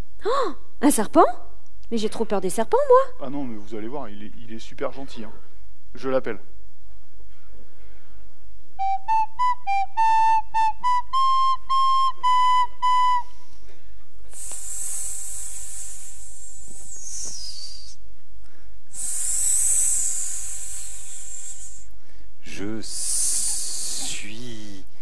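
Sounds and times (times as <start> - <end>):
high snake-like hisses: 14.3 - 18.0, 18.9 - 25.0
wavering voice: 22.4 - 25.0.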